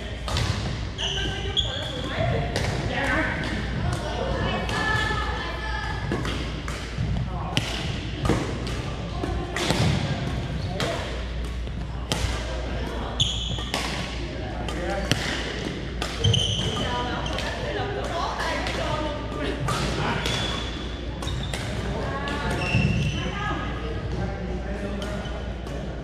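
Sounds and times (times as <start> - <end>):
echoing chatter: 0.0 - 26.0
racket hitting shuttlecock: 13.6 - 17.5.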